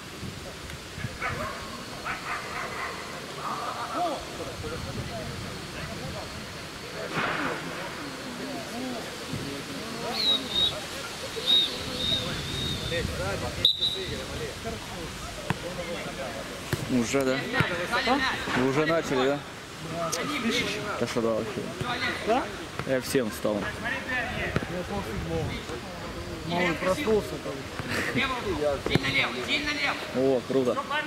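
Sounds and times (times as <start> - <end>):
footballers talking: 0.0 - 31.0
high wavering whistle tones: 10.0 - 13.0.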